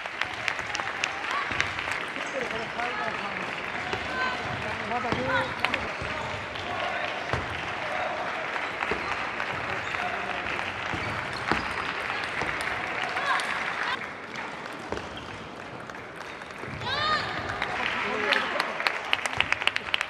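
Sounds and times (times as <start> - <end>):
applause and clapping: 0.0 - 20.0.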